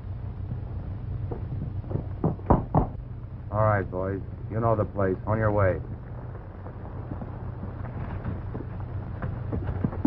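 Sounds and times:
steady low hum: 0.0s - 10.0s
hooves knocking: 1.2s - 3.0s, 6.2s - 10.0s.

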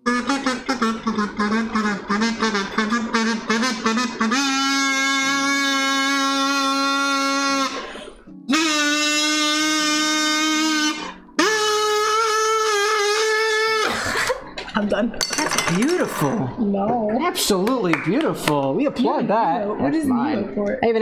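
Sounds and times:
buzzy reedy sung notes: 0.0s - 7.9s, 8.5s - 13.8s.

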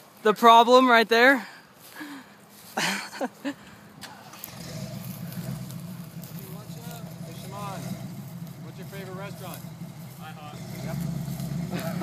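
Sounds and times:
vehicle engine droning: 3.6s - 12.0s.

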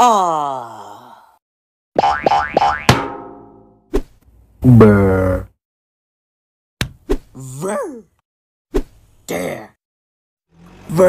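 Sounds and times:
cartoon character grunt: 7.4s - 8.1s.

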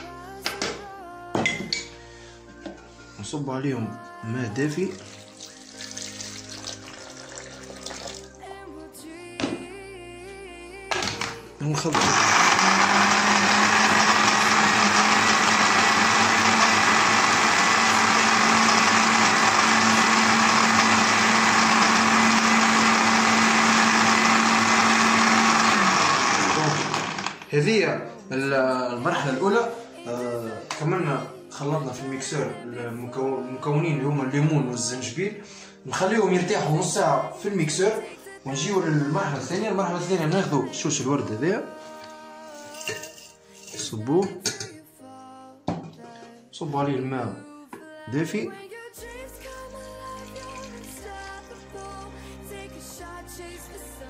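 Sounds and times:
background music with held notes: 0.0s - 26.5s, 27.3s - 54.0s
blender running: 11.8s - 27.5s.

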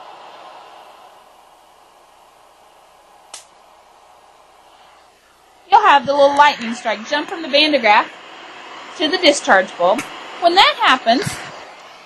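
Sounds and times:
generator hiss: 0.0s - 12.0s
sharp spark snap: 3.3s - 3.6s.

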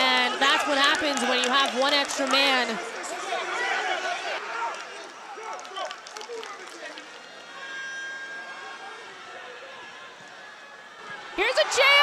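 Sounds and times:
shouts and voices: 0.0s - 10.1s, 11.0s - 12.0s.

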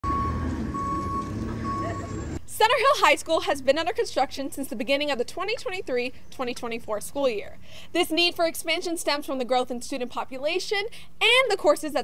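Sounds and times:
backup alarm beeping: 0.0s - 2.4s
machine engine rumble: 0.0s - 2.4s.

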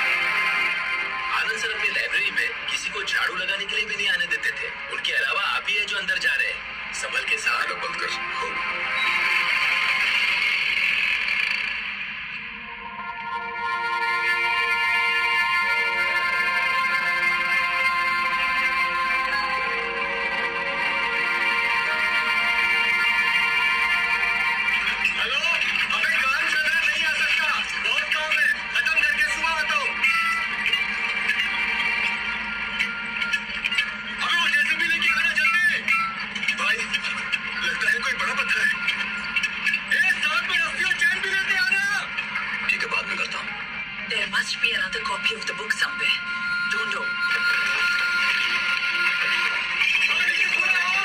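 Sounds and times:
background music from tv: 0.0s - 51.0s
echoing film score: 0.0s - 51.0s.

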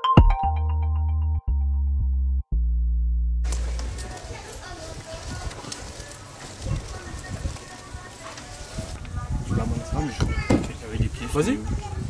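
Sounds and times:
faint outdoor ambience: 3.4s - 12.0s.

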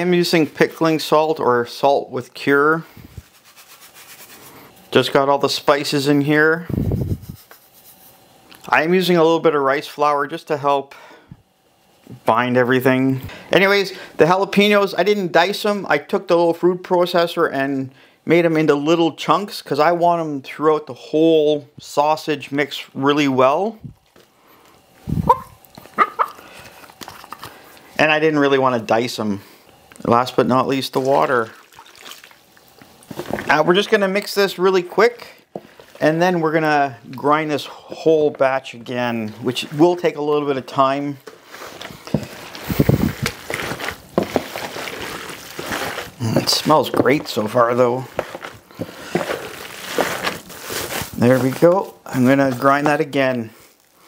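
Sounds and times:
dog barking: 25.3s - 26.4s
wet squishing of kneaded meat: 29.8s - 33.9s, 41.5s - 52.9s.

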